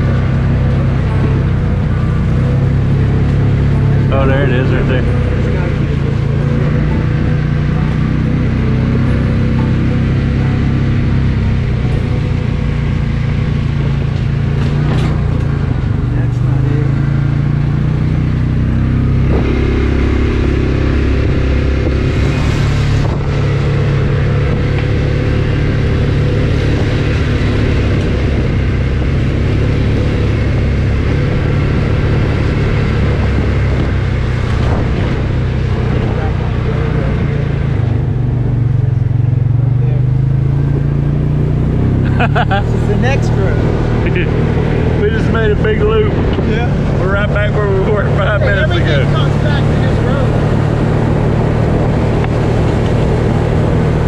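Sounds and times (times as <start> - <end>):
utility vehicle engine running: 0.0 - 54.0.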